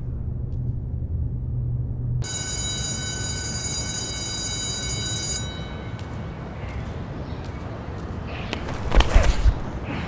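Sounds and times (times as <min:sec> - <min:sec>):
electric school bell ringing: 0:02.2 - 0:06.0.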